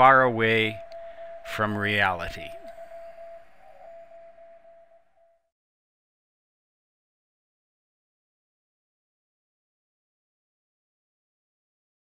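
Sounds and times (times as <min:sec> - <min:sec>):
steady held tone: 0:00.0 - 0:05.5.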